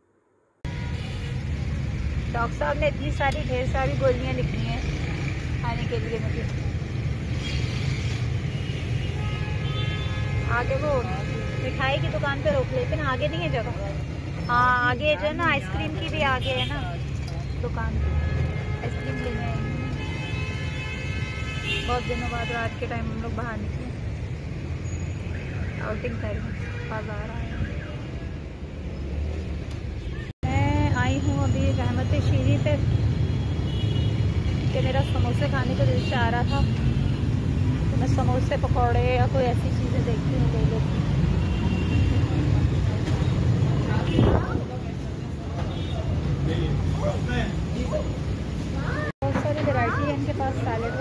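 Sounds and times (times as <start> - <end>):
low street noise: 0.0 - 51.0
woman speaking: 10.5 - 17.0.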